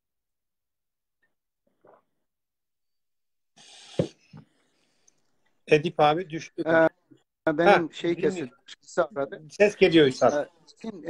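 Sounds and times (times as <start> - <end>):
short hissing breath: 3.6 - 4.3.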